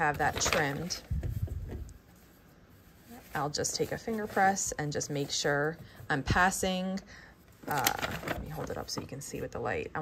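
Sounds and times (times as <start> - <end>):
hands rubbing paper and fabric: 0.0 - 6.9.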